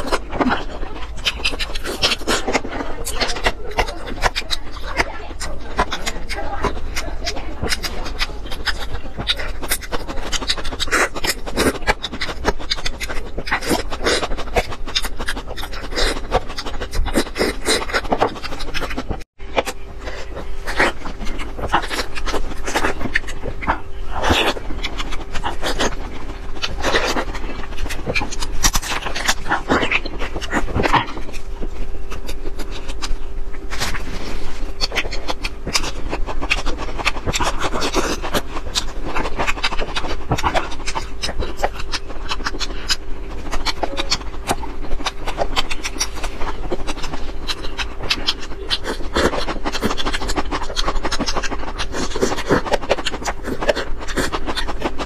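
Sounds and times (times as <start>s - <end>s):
chewing soft jelly: 0.0s - 55.0s.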